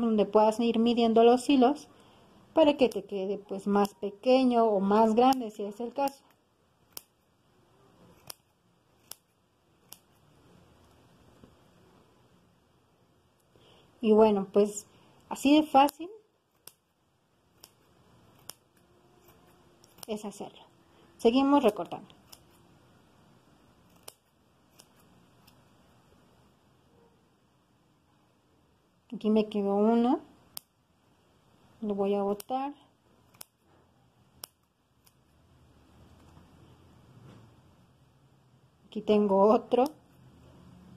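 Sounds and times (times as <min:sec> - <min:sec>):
scissors snipping yarn: 0:01.4 - 0:07.3, 0:07.9 - 0:11.0, 0:14.6 - 0:20.6, 0:21.2 - 0:22.7, 0:23.8 - 0:25.7, 0:30.4 - 0:30.8, 0:31.8 - 0:35.4, 0:39.5 - 0:40.2.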